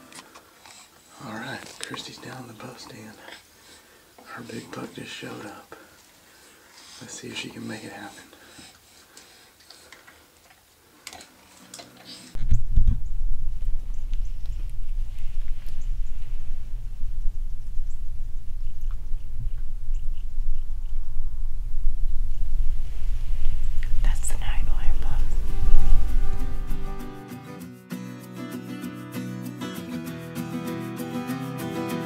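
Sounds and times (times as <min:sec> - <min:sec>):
soft whispering: 0:01.1 - 0:03.5, 0:04.2 - 0:05.9, 0:06.9 - 0:08.5, 0:23.4 - 0:26.2
wind rumble on microphone: 0:12.4 - 0:27.2.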